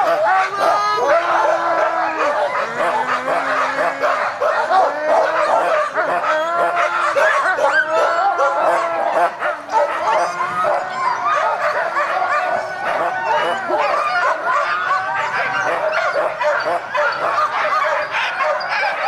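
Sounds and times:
sled dogs howling and yipping: 0.0s - 19.0s.

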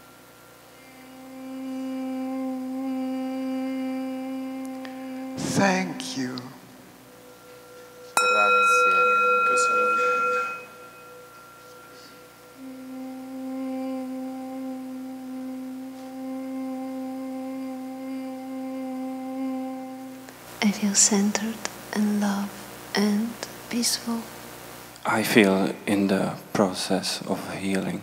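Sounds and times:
held tone: 0.8s - 19.8s
bell ringing: 7.3s - 13.0s
woman speaking softly: 20.6s - 24.3s.

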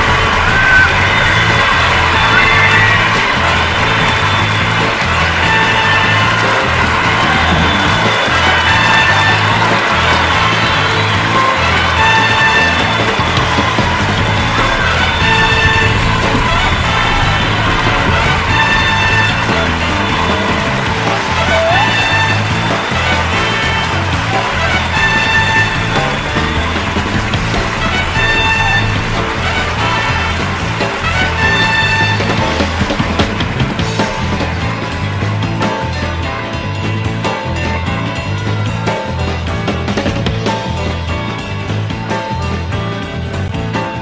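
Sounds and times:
steady bass line: 0.0s - 44.0s.

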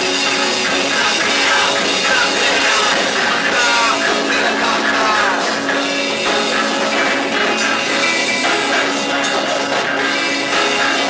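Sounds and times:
amplified electric guitar: 0.0s - 11.0s
drum kit: 0.0s - 11.0s.

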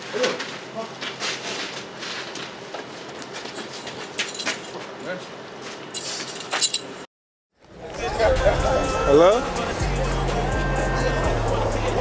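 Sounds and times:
knocks and metal clinks: 4.2s - 4.8s, 5.9s - 7.0s
raised voices: 7.8s - 12.0s.

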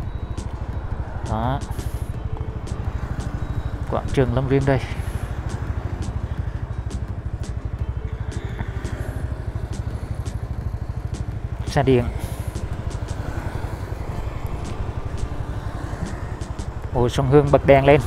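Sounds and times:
motor scooter engine running: 0.0s - 18.0s.

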